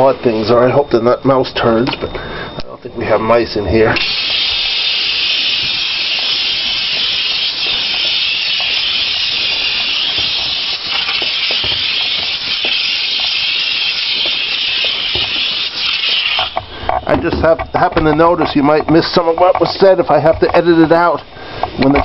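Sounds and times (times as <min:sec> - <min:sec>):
steam cleaner hissing: 0:04.0 - 0:17.4.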